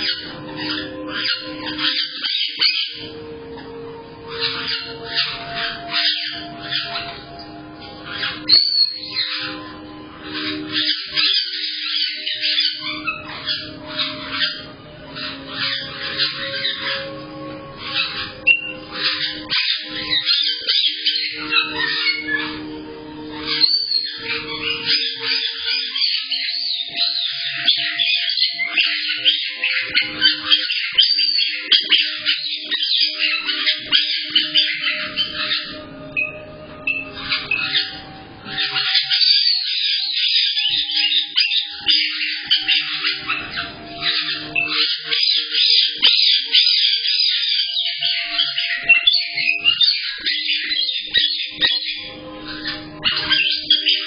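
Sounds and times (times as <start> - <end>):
parrots chirping and squawking: 0.0 - 54.0.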